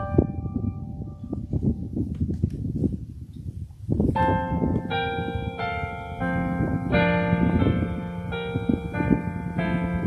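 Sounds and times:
digital keyboard playing a hymn: 0.0 - 2.0, 4.0 - 10.0
wind rumble on microphone: 0.0 - 10.0.

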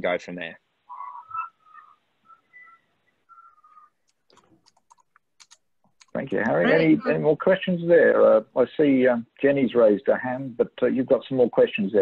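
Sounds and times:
quiet wavering whistle-like tones: 0.9 - 4.1.

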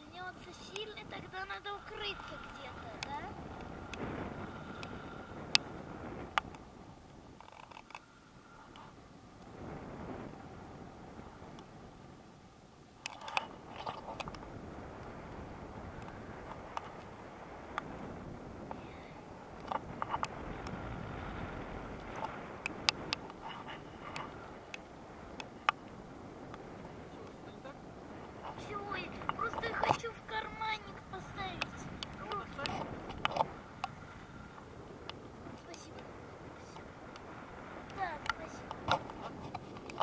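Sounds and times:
wind rushing over microphone: 0.0 - 40.0.

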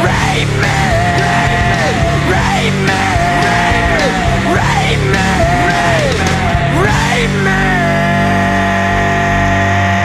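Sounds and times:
distorted electric guitar chord: 0.0 - 10.0.

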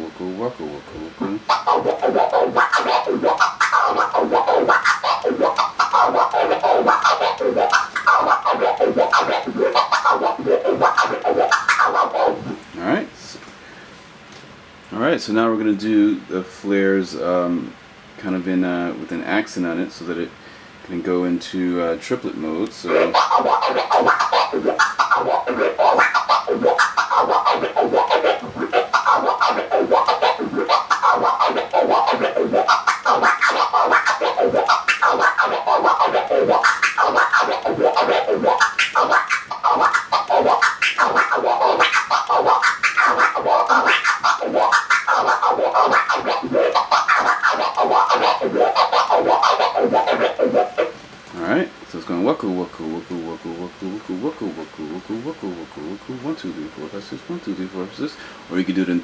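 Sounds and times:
vinyl record scratching: 0.0 - 13.2, 22.0 - 51.6, 52.8 - 59.0.

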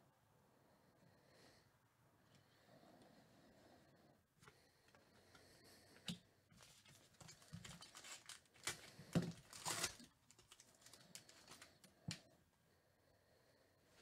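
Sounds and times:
foil wrapper crinkling: 6.6 - 11.8.

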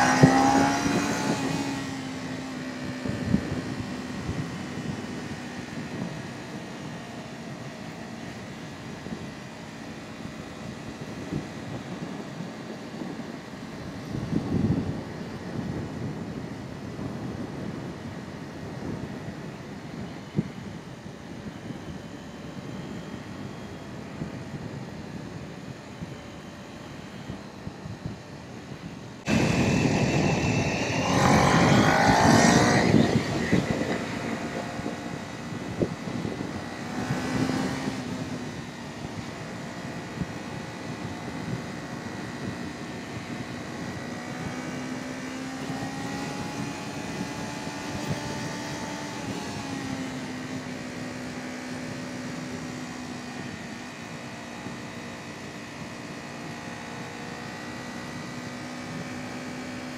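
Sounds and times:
motorcycle engine accelerating: 0.0 - 20.1, 27.2 - 59.9.

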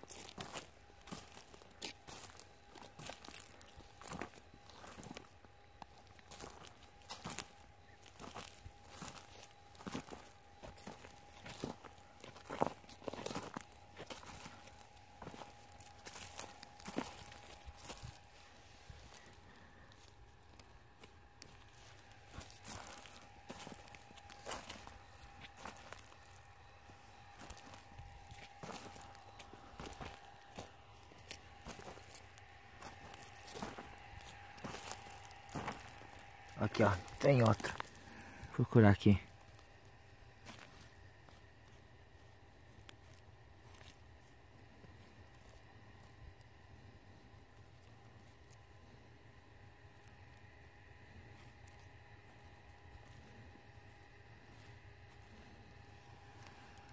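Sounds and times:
faint steady tone: 0.0 - 56.9
footsteps crunching through straw: 0.0 - 56.9.

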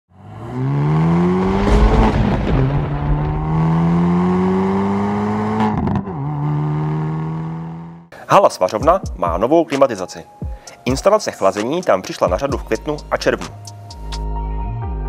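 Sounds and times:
car engine accelerating: 0.1 - 8.1.

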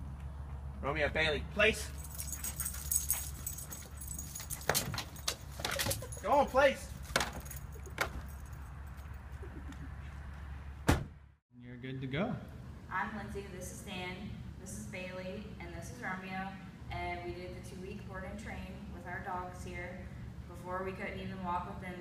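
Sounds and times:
metal jingling: 1.8 - 9.3.

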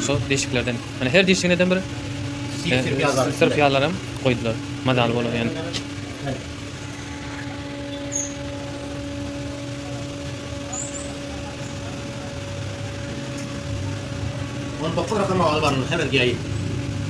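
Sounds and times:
mechanical hum: 0.0 - 17.0
low rumble: 5.8 - 17.0.

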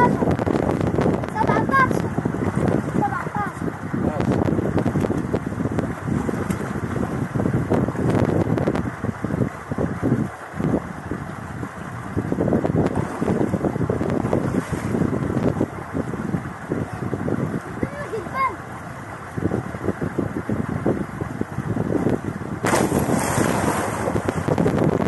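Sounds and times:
water splashing and sloshing: 0.0 - 25.0
wind buffeting microphone: 0.0 - 25.0.

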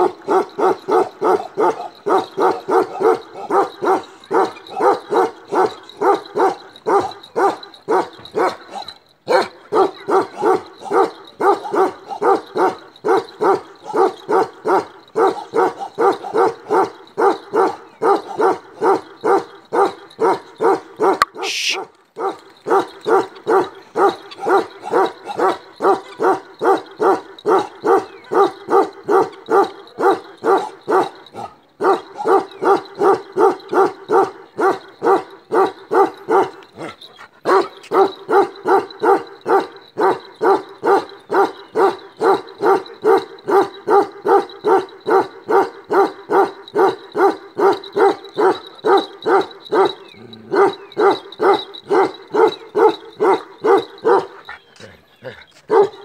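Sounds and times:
dog barking: 0.0 - 56.0.

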